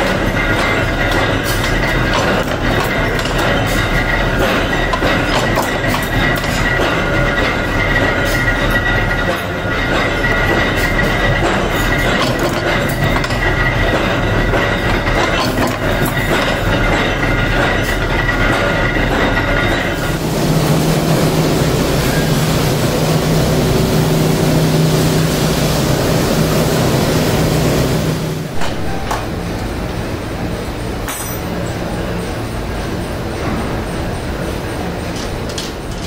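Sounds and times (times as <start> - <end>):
machine high whine with clicks: 0.0 - 20.2, 28.5 - 36.0
machine steady hum: 0.0 - 36.0.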